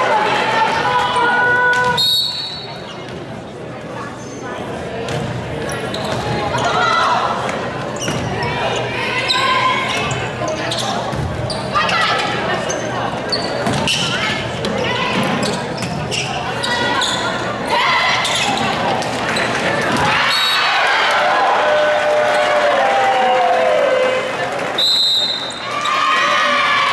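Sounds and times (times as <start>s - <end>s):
spectators' voices: 0.0s - 26.9s.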